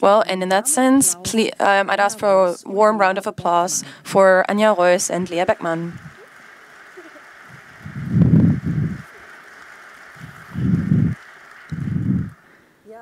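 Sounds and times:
audience applauding: 4.8s - 12.6s.

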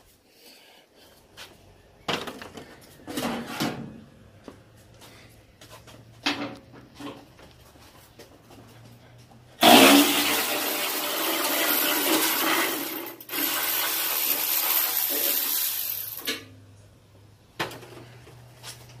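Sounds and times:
power ratchet running: 9.6s - 16.4s.

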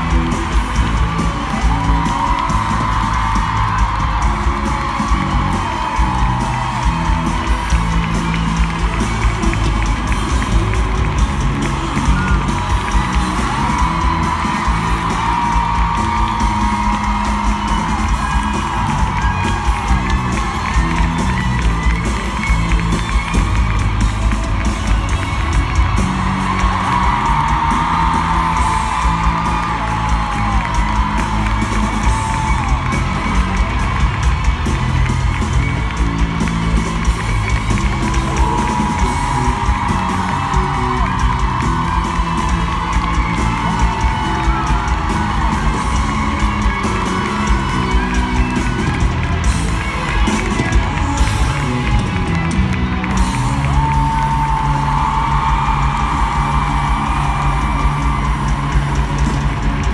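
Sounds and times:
crowd whooping and yelling: 0.0s - 59.9s
live band music: 0.0s - 59.9s.

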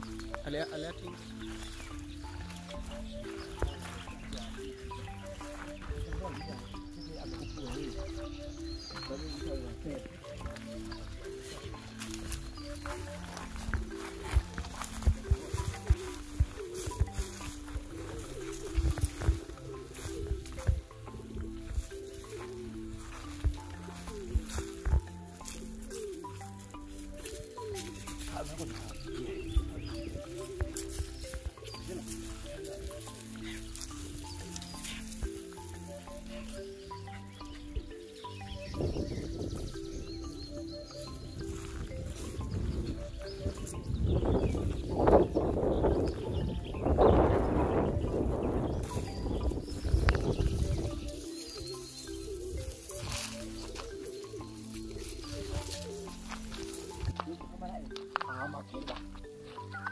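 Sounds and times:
background music melody: 0.0s - 59.9s.

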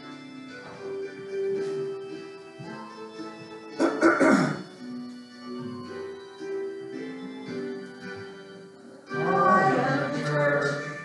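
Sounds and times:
woman clearing her throat: 3.8s - 4.7s
instrumental hymn introduction: 7.2s - 11.0s.

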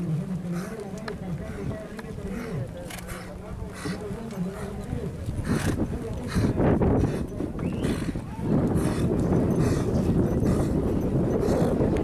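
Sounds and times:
hooves clip-clopping on dirt: 0.0s - 12.0s.

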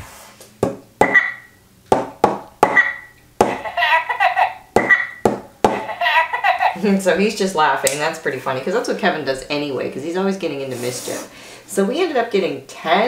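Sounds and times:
toy laughing from small speaker: 3.6s - 5.1s, 5.8s - 6.8s.

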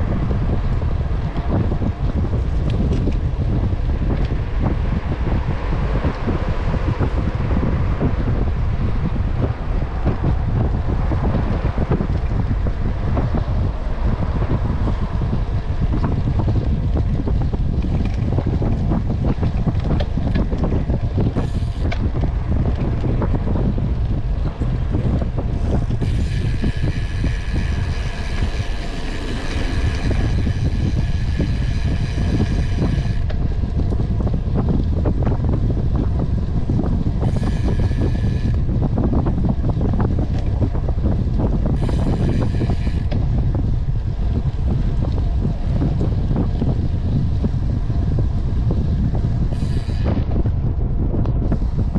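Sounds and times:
wind on microphone: 0.0s - 51.9s.

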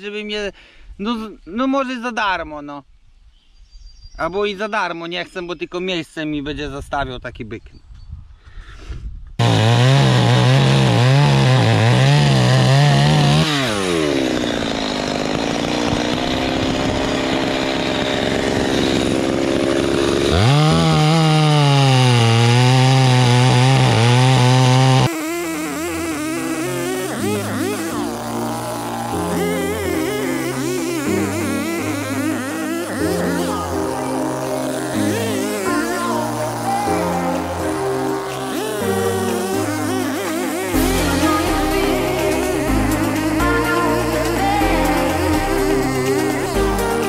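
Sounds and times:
chainsaw cutting logs: 9.4s - 47.0s
background music with a beat: 40.7s - 47.0s.

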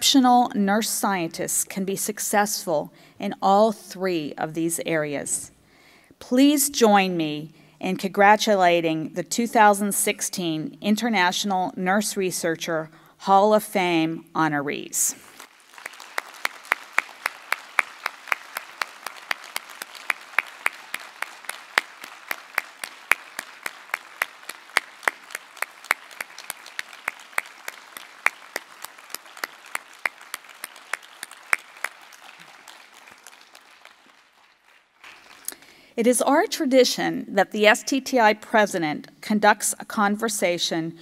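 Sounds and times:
audience applauding: 15.3s - 35.6s
loud claps close by: 15.4s - 35.5s.

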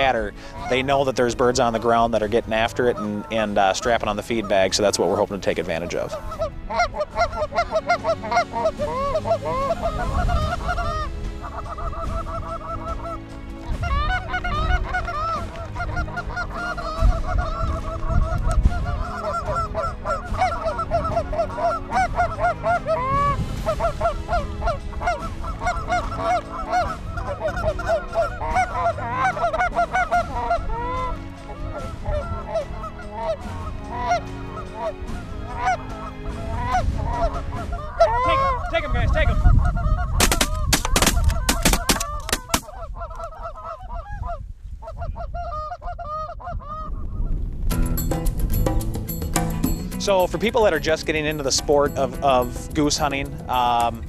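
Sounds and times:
goose calls honking and clucking: 0.0s - 47.0s.

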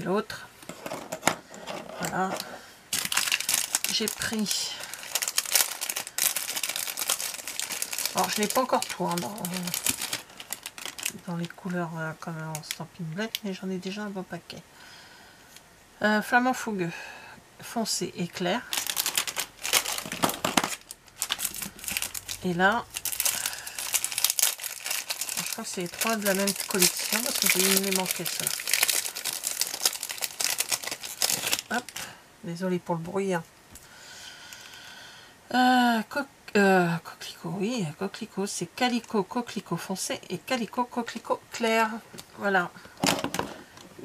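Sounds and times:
plastic packaging crinkling: 0.8s - 11.8s, 12.5s - 13.4s, 18.6s - 32.2s.

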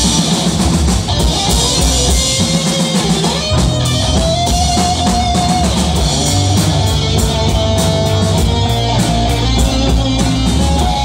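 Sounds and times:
drum kit with cymbals: 0.0s - 11.0s
electric bass: 0.0s - 11.0s
electric guitar: 0.0s - 11.0s.

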